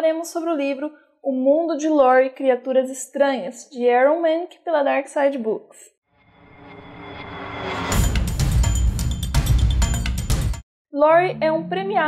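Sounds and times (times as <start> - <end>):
whooshing rise: 6.2 - 10.1
intro music: 6.2 - 10.6.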